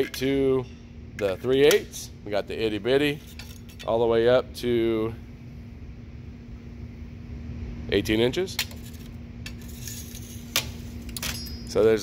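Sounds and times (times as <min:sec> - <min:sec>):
steady low hum: 0:00.0 - 0:12.0
metal bars clinking: 0:08.6 - 0:12.0.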